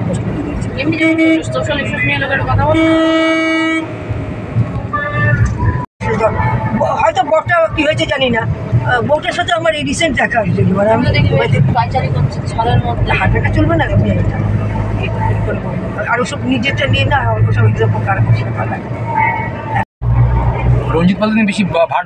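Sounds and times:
people talking: 0.0 - 3.0, 4.8 - 19.8, 20.4 - 22.0
car engine drone and road noise: 0.0 - 22.0.

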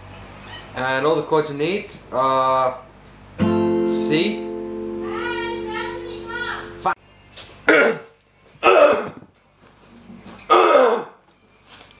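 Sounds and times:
acoustic guitar chord: 3.4 - 7.0.

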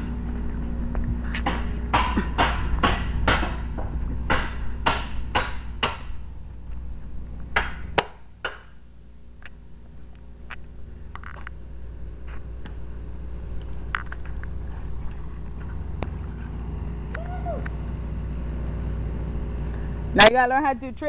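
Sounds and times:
footsteps on pavement: 0.0 - 1.9.

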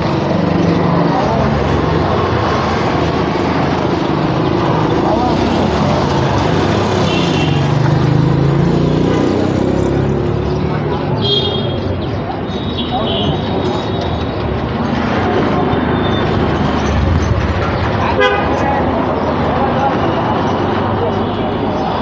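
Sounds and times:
faint voices: 0.0 - 7.0, 9.2 - 22.0.

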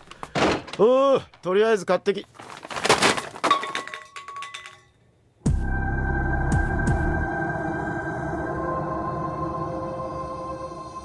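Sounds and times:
cans and packages clattering: 2.3 - 4.9
grocery bags crashing on floor: 2.4 - 4.8.

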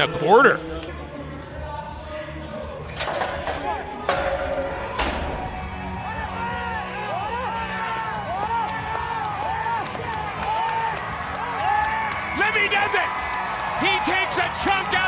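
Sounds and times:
background music: 0.0 - 15.0
chute gate banging open: 3.0 - 6.0.

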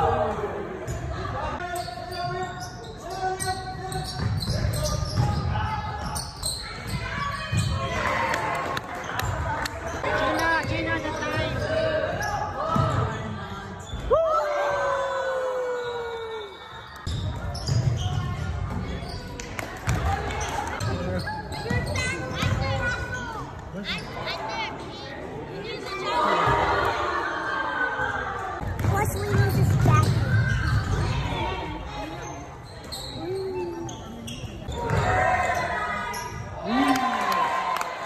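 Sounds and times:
echoing gym voices: 0.0 - 38.0
shoe squeaks: 0.9 - 7.9, 16.6 - 19.3, 31.9 - 36.6
basketball bouncing on court: 3.9 - 6.2, 28.6 - 31.3.

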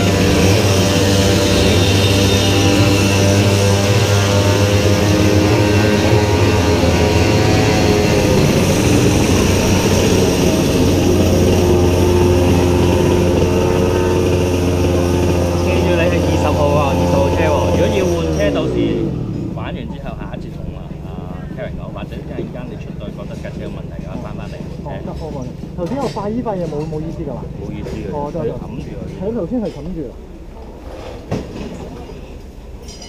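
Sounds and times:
kart engine idling: 0.0 - 26.4.

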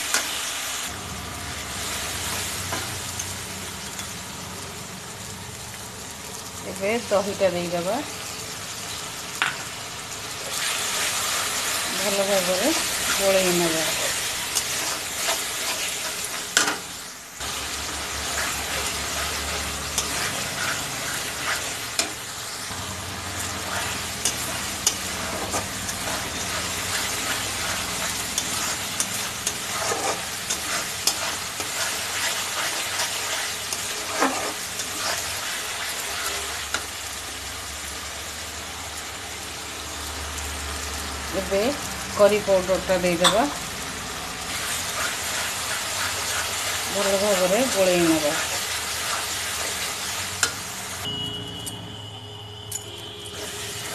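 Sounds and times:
paste sizzling in oil: 0.0 - 51.1, 53.2 - 53.9
metal spatula scraping pan: 12.1 - 17.0, 18.1 - 22.8, 23.4 - 36.9, 44.5 - 50.6, 53.2 - 53.9.

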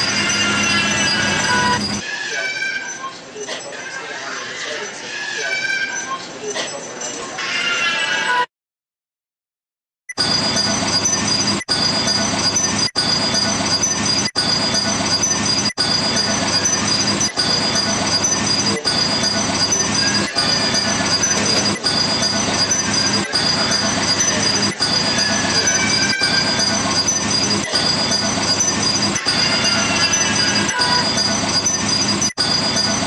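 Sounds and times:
steady high whine: 0.0 - 2.0, 10.2 - 33.0
faint wavering squeals: 0.0 - 8.5, 10.6 - 33.0.

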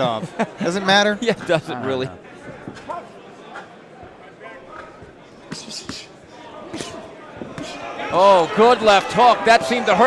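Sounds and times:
murmur of crowd and voices: 0.0 - 10.0.

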